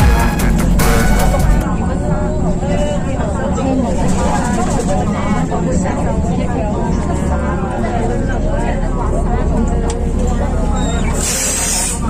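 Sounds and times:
music: 0.0s - 1.7s
vehicle low rumble: 0.0s - 12.0s.

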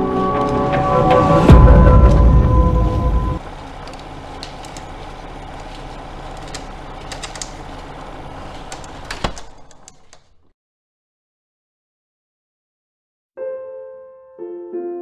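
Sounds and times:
loud music hit: 0.0s - 3.4s
steady low hum: 0.0s - 9.2s
faint clicks and ticks: 3.7s - 7.9s.

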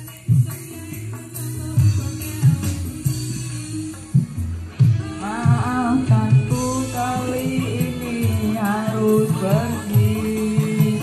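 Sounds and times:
karaoke backing track: 0.0s - 11.0s
man singing into a microphone: 0.0s - 11.0s.

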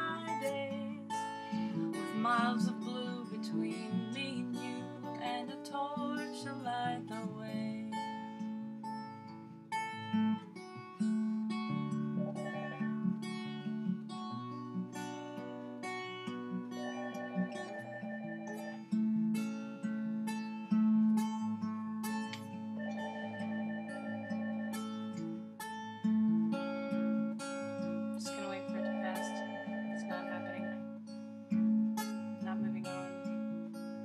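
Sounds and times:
acoustic guitar: 0.0s - 34.0s
telephone ringing: 12.2s - 13.0s, 16.8s - 19.0s, 22.8s - 25.2s, 28.6s - 31.0s.

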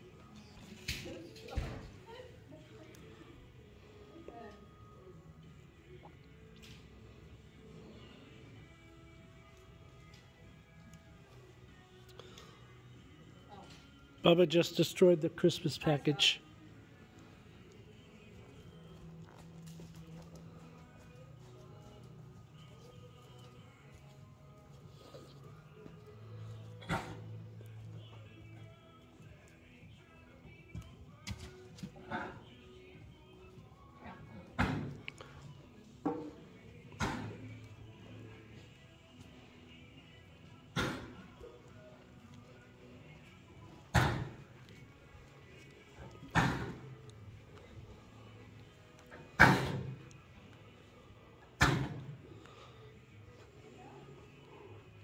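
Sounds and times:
faint background music: 0.0s - 55.0s.

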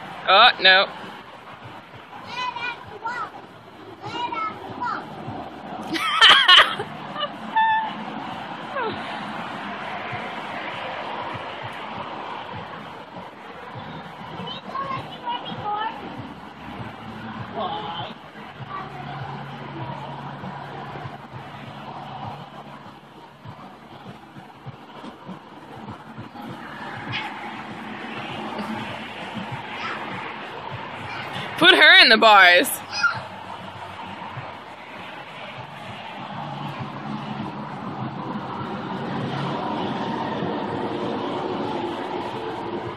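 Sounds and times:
playground chatter: 0.0s - 42.9s.

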